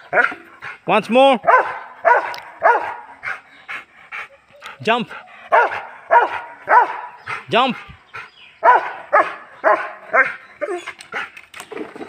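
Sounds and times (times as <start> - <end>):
dog barking: 1.4 - 3.1, 5.5 - 7.2, 8.6 - 10.4.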